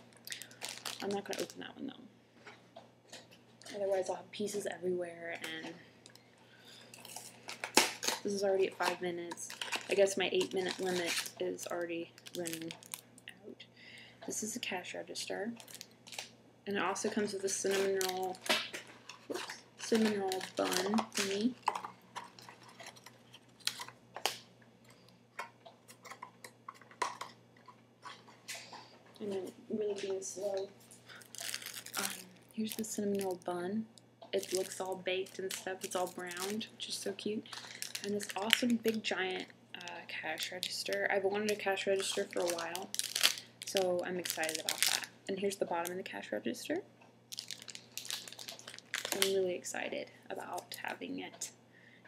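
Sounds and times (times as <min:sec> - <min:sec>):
plastic wrapper crinkling: 0:00.0 - 0:01.7, 0:06.9 - 0:13.2, 0:15.5 - 0:33.6, 0:34.4 - 0:46.0, 0:47.3 - 0:49.5
packaging being handled: 0:00.2 - 0:01.6, 0:07.0 - 0:13.0, 0:17.2 - 0:24.4, 0:30.9 - 0:33.4, 0:34.4 - 0:36.6, 0:37.4 - 0:45.1, 0:47.3 - 0:49.4.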